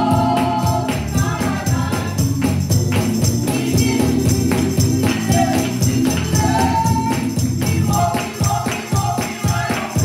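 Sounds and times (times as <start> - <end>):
group singing gospel: 0.0 - 10.0
hand-clapping on the beat: 0.0 - 10.0
instrumental accompaniment: 0.0 - 10.0.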